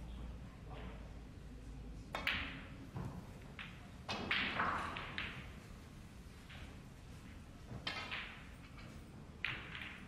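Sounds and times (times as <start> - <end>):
balls colliding clicks: 2.1 - 5.6, 7.7 - 10.0
ball rattling into pocket: 7.8 - 10.0.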